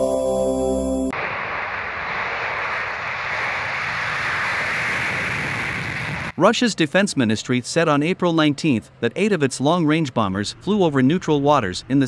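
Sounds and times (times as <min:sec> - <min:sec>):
jet engines at takeoff power: 0:01.1 - 0:12.0.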